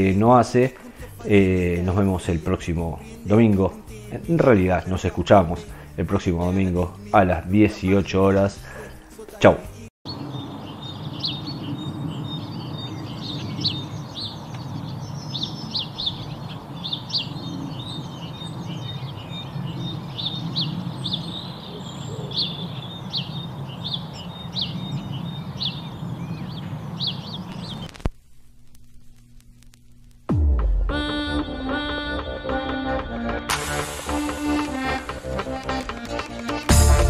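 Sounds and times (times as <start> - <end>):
birds chirping: 0.0 - 28.1.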